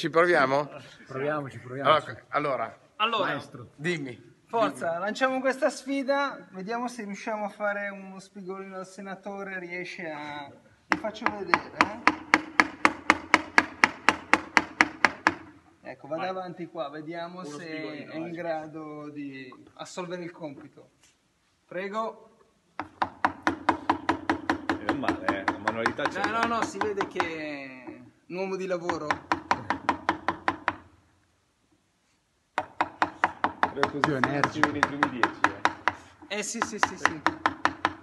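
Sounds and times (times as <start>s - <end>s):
mallet striking chisel into wood: 10.9s - 15.6s, 22.8s - 27.4s, 28.8s - 31.0s, 32.6s - 38.0s.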